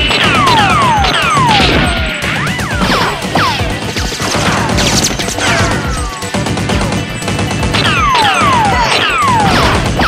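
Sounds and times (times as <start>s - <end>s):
action music with steady beat: 0.0s - 10.0s.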